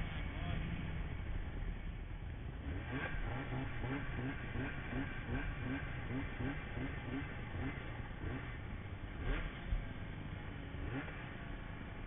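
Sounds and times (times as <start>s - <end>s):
snowmobile engine rumbling: 0.0s - 12.0s.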